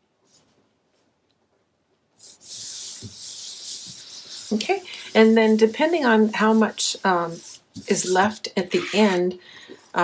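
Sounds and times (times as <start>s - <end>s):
hands rubbing paper: 2.2s - 9.2s.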